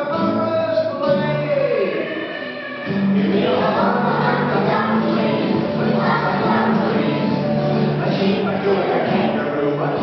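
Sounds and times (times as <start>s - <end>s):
musical accompaniment: 0.0s - 10.0s
girls singing together: 1.9s - 9.5s.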